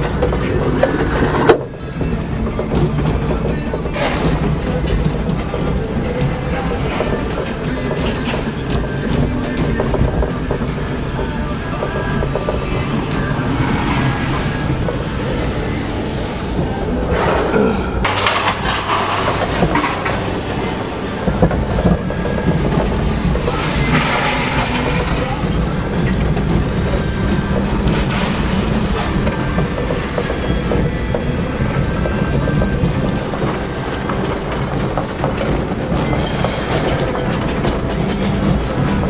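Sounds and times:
mechanical rumble and clatter: 0.0s - 39.0s.

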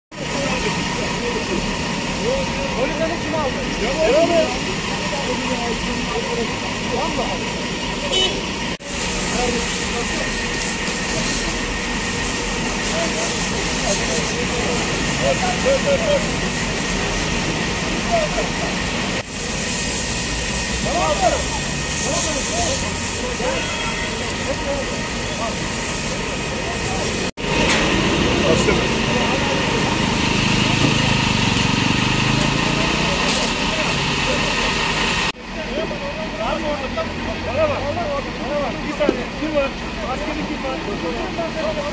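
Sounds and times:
people talking: 0.2s - 19.2s, 20.6s - 41.9s
hose water spraying: 8.8s - 35.4s.

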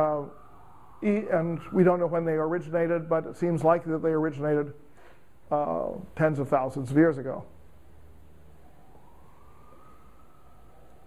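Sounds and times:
faint distant siren wail: 0.0s - 4.9s, 5.5s - 11.0s.

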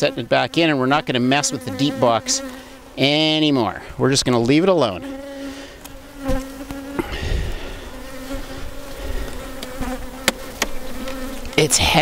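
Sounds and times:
honeybees buzzing: 0.0s - 12.0s
knocks on wooden hive boxes: 9.6s - 10.8s.

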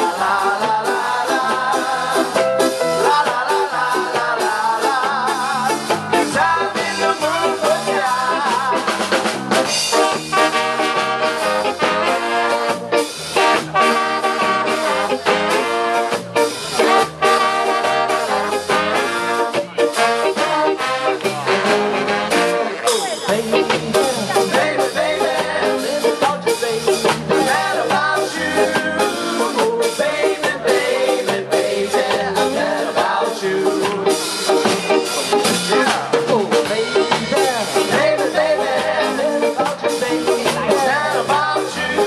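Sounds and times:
bass: 0.0s - 42.0s
drums: 0.0s - 42.0s
guitar: 0.0s - 42.0s
trombone: 0.0s - 42.0s
trumpet: 7.0s - 24.9s
saxophones: 9.9s - 16.2s.

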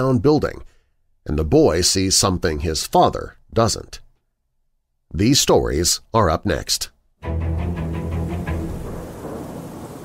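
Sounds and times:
low musical drone: 7.2s - 9.3s
rain-like hiss and rumble: 8.2s - 10.0s.

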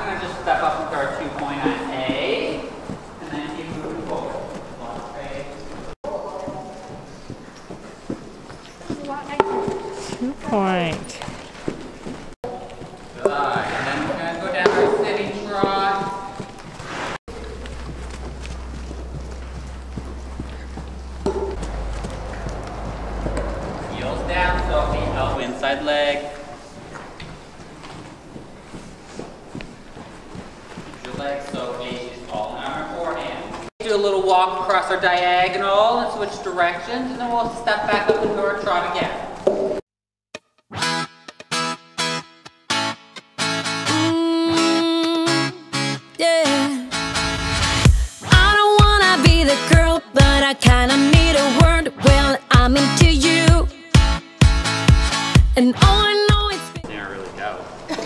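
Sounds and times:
people talking: 0.0s - 6.8s, 10.2s - 11.2s, 13.2s - 16.2s, 23.8s - 26.4s, 31.0s - 39.2s, 55.6s - 58.0s
horse hoofbeats on dirt: 0.0s - 34.7s.

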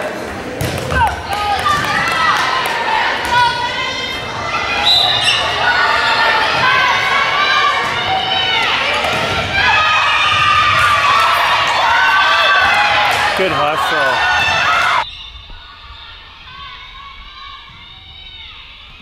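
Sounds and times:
people calling out: 1.0s - 18.8s.

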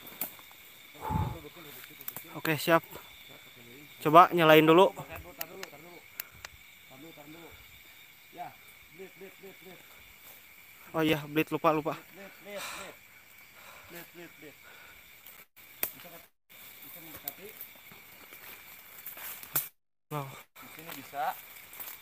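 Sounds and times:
steady hiss: 0.0s - 22.0s
sharp clicks: 5.1s - 6.6s.

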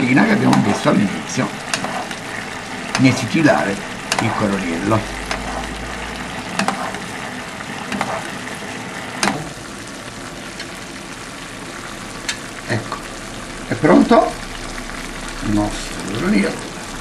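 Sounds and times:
sauce sizzling in a pan: 0.0s - 17.0s
metal spoon stirring: 1.7s - 3.1s, 6.6s - 7.0s
spoon clicking against pan: 6.6s - 6.8s.

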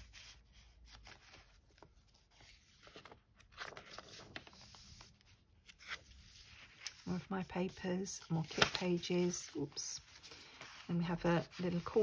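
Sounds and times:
paper pages rustling: 0.0s - 12.0s.

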